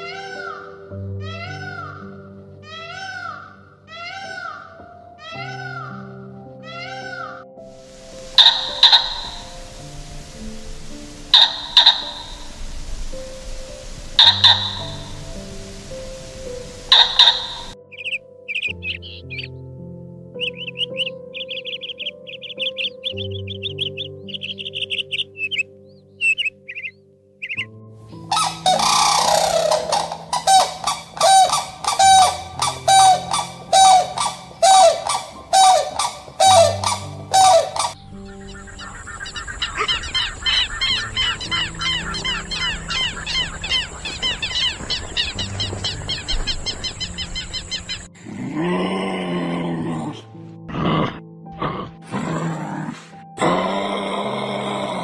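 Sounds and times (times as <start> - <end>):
soft piano music: 0.0 - 55.0
crane honking calls: 7.8 - 18.2, 28.2 - 48.1
rapid high chirping: 7.8 - 19.6, 20.4 - 25.6, 26.2 - 48.2
fast high chattering bird call: 8.2 - 10.4, 11.1 - 12.6, 14.1 - 15.5, 16.2 - 19.5, 28.3 - 48.1.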